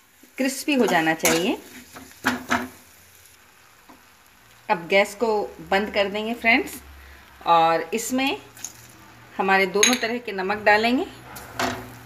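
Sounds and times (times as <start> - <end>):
leaves sizzling in oil: 0.0 - 12.0.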